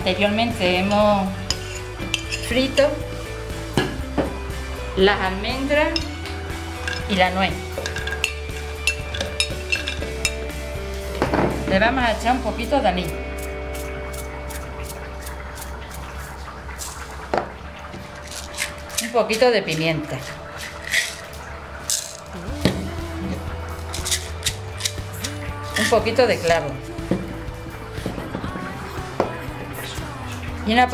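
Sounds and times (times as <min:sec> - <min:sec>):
background music: 0:00.0 - 0:30.9
knife scraping a china plate: 0:01.5 - 0:02.5
spice jar shaking: 0:18.2 - 0:18.9, 0:20.6 - 0:21.3, 0:21.9 - 0:22.3, 0:23.9 - 0:26.0.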